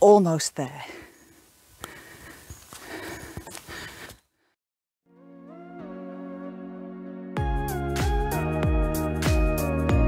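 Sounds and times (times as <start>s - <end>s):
footsteps on dirt track: 0.7s - 4.3s
person breathing: 0.8s - 4.6s.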